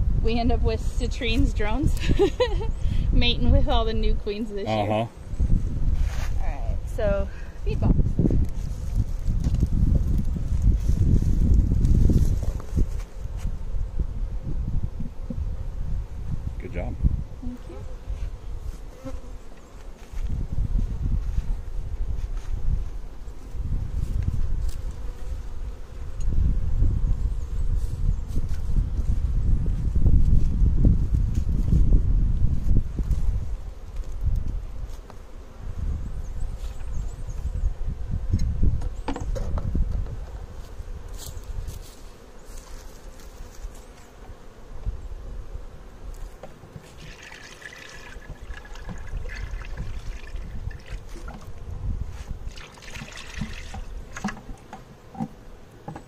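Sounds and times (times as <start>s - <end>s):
syrup trickling and splashing: 46.8s - 51.4s, 52.5s - 54.4s.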